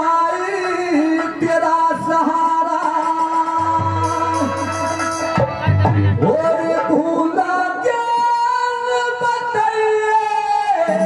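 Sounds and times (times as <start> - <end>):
man singing through pa: 0.0 - 11.0.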